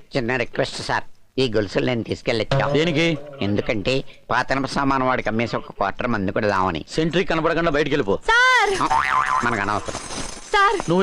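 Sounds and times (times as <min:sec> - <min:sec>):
comic boing sound effect: 0:02.5 - 0:04.2.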